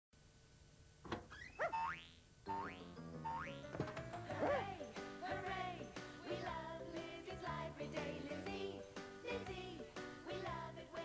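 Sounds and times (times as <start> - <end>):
cartoon theme music: 1.6 - 10.6.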